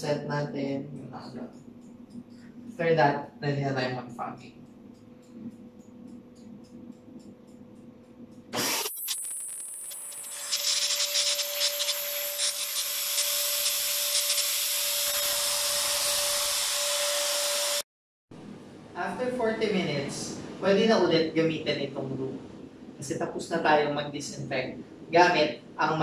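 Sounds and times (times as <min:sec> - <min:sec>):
fogger blower motor whining: 0:08.6 - 0:17.8.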